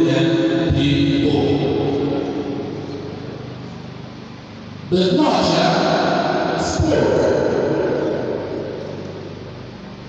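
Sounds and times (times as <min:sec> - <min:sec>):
man speaking over pa: 0:00.0 - 0:02.2, 0:04.9 - 0:08.4
faint room hum: 0:00.0 - 0:10.0.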